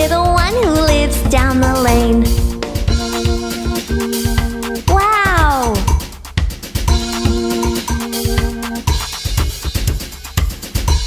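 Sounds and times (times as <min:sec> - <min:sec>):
drum-backed children's music: 0:00.0 - 0:11.0
cartoon whining voice effect: 0:04.9 - 0:06.0.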